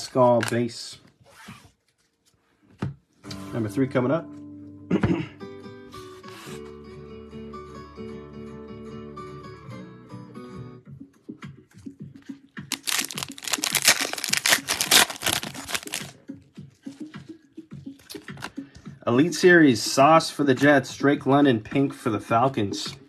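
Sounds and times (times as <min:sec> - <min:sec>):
cards rustling and clicking: 0:00.0 - 0:00.8, 0:12.7 - 0:16.1
background guitar music: 0:03.2 - 0:23.0
foil wrapper tearing and crinkling: 0:12.7 - 0:16.1.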